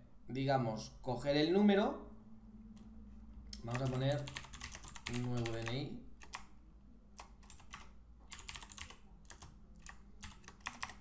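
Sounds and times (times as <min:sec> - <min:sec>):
typing on a computer keyboard: 0:03.6 - 0:06.5, 0:07.2 - 0:11.0.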